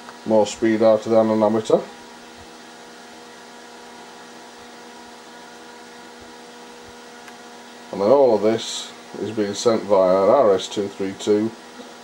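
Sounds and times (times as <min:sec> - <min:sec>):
cooling fan whirring: 0:00.0 - 0:12.0.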